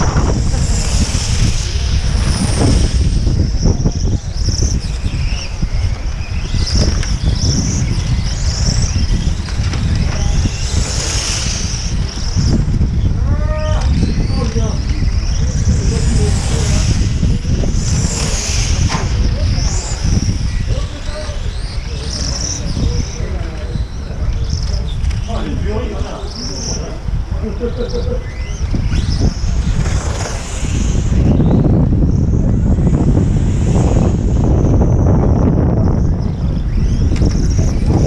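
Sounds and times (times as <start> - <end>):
small engines whining high: 0.0 - 25.3, 26.0 - 38.0
steady low rumble: 0.0 - 38.0.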